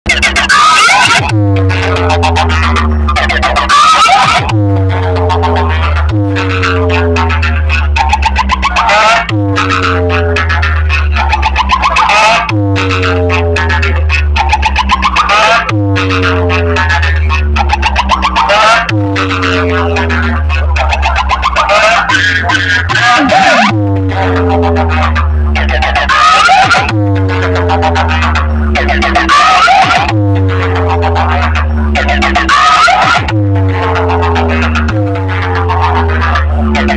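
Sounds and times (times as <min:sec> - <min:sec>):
electronic remix with deep bass: 0:00.0 - 0:36.9
high-pitched chattering sample: 0:00.1 - 0:36.9.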